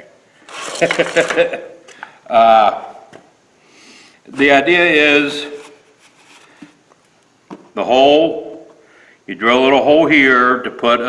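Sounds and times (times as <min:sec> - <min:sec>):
person laughing: 0:00.6 - 0:01.8.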